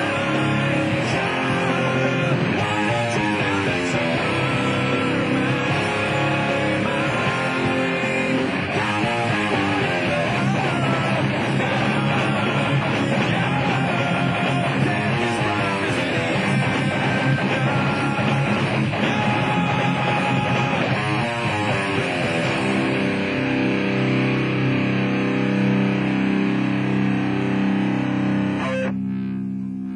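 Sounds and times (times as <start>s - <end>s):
electric guitar playing: 0.0s - 29.9s
rock backing track: 0.0s - 29.9s.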